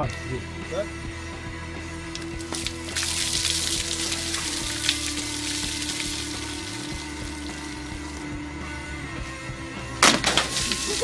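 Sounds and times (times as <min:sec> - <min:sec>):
water splashing onto floor: 0:02.2 - 0:08.2, 0:10.0 - 0:11.0.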